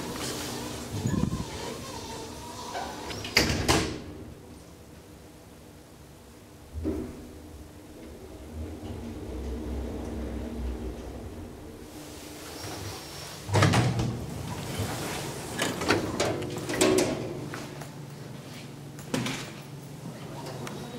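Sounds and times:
elevator doors sliding open: 0:00.0 - 0:04.3, 0:07.9 - 0:17.5
elevator hum: 0:00.0 - 0:20.9.

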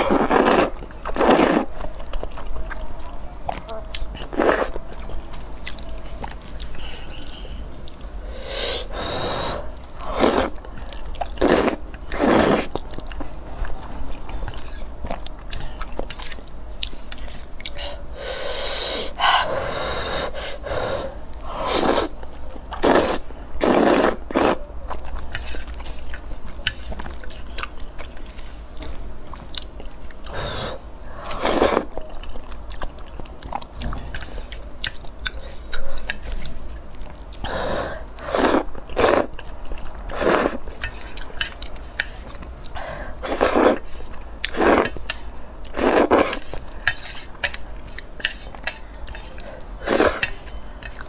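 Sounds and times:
person slurping noodles: 0:00.0 - 0:01.7, 0:04.3 - 0:04.8, 0:08.3 - 0:10.6, 0:11.4 - 0:12.8, 0:18.2 - 0:22.2, 0:22.8 - 0:24.6, 0:30.3 - 0:31.9, 0:37.4 - 0:39.3, 0:40.1 - 0:40.6, 0:43.2 - 0:43.8, 0:44.5 - 0:45.0, 0:45.7 - 0:47.3, 0:49.8 - 0:50.3
chewing: 0:00.0 - 0:08.2, 0:09.7 - 0:18.1, 0:21.3 - 0:30.5, 0:31.1 - 0:37.6, 0:38.2 - 0:51.0.

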